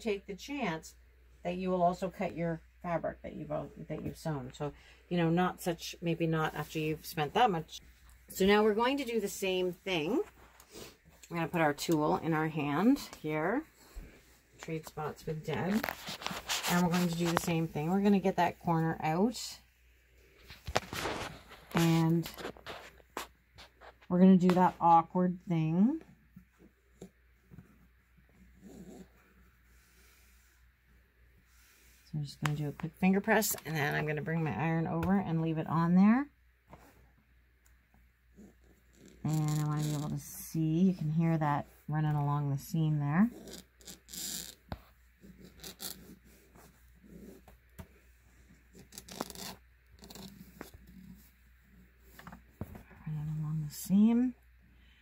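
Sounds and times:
iron scraping over fabric: 15.4s - 18.0s.

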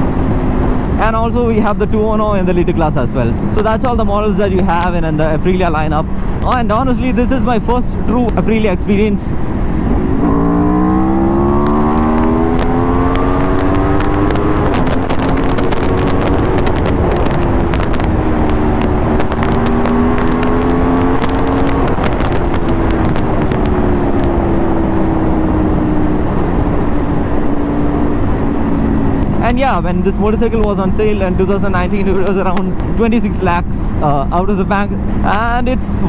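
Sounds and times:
wind rush on microphone: 0.0s - 36.0s
motorcycle engine accelerating: 9.4s - 33.0s.

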